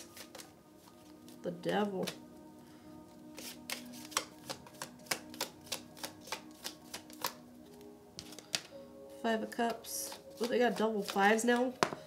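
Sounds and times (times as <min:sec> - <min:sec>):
cards shuffling: 0:00.0 - 0:01.4, 0:02.0 - 0:02.2, 0:03.4 - 0:08.7, 0:09.6 - 0:12.0
soft background music: 0:00.0 - 0:12.0
sharp card snaps: 0:03.4 - 0:07.4.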